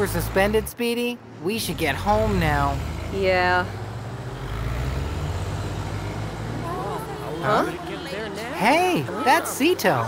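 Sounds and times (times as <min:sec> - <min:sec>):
street traffic noise: 0:00.0 - 0:10.0.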